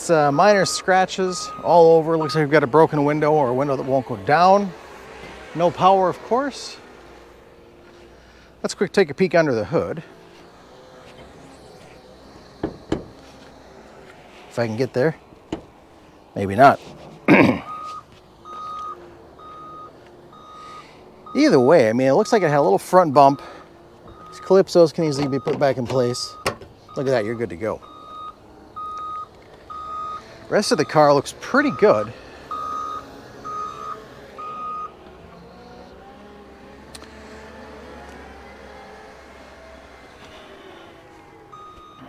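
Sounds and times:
vehicle reversing alarm beeping: 0:00.0 - 0:08.5, 0:17.5 - 0:36.4, 0:37.2 - 0:42.0.

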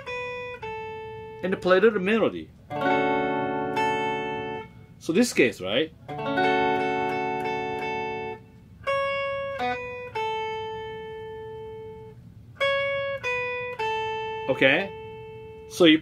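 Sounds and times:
electric guitar single-note melody: 0:00.0 - 0:05.0, 0:05.9 - 0:16.0
electric guitar chord ringing: 0:00.0 - 0:05.3, 0:05.9 - 0:16.0.

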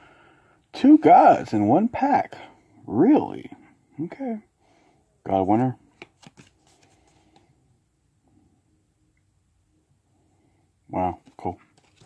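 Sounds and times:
cards rustling: 0:05.8 - 0:07.5, 0:11.1 - 0:12.0
cards clicking: 0:05.9 - 0:07.4.

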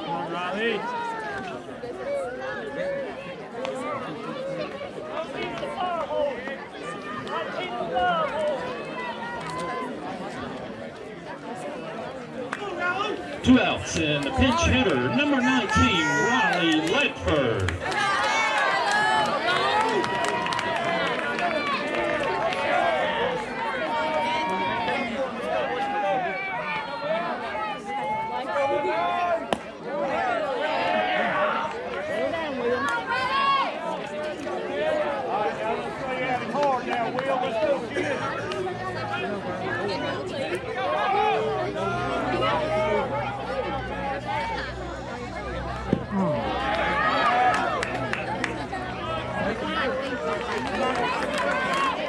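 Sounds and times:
crowd babble: 0:00.0 - 0:52.0.

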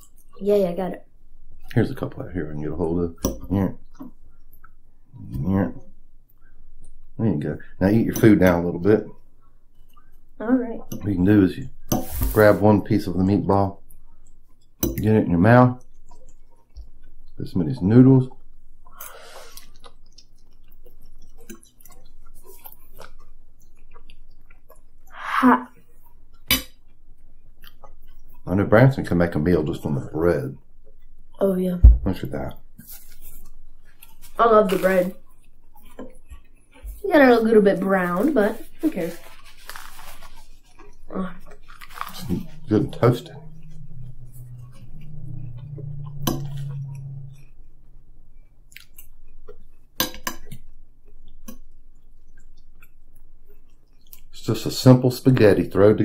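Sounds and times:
chewing food: 0:00.0 - 0:00.4, 0:03.4 - 0:07.2, 0:09.1 - 0:11.1, 0:15.8 - 0:17.4, 0:18.2 - 0:28.5, 0:32.6 - 0:54.4
low hum: 0:40.1 - 0:53.7.

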